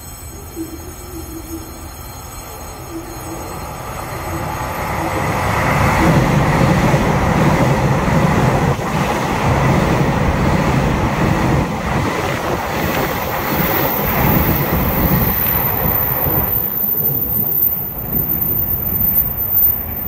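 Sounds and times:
thin high-pitched whine: 0:00.0 - 0:07.7, 0:12.2 - 0:20.0
train wheels rumbling on rail: 0:03.3 - 0:20.0.

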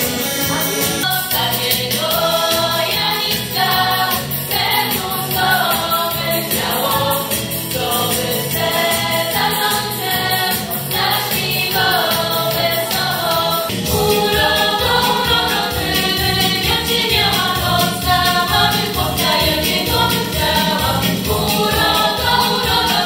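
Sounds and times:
instrumental accompaniment with beat: 0:00.0 - 0:23.0
girls singing through speakers: 0:00.4 - 0:23.0.

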